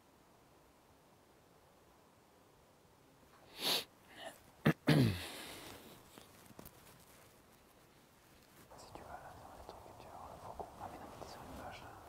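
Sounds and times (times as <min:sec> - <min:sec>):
person whispering: 0:08.7 - 0:12.0.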